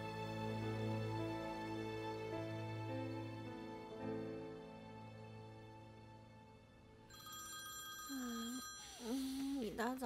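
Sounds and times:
phone ringtone: 7.1s - 9.6s
person mumbling sleepily: 8.1s - 9.8s.

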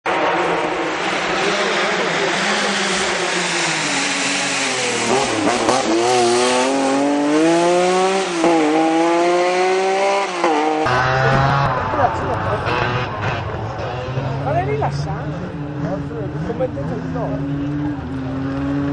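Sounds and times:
racing engine accelerating: 0.1s - 18.9s.

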